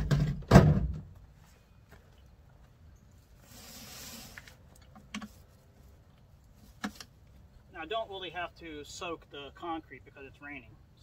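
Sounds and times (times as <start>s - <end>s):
soft hiss: 3.0s - 7.2s.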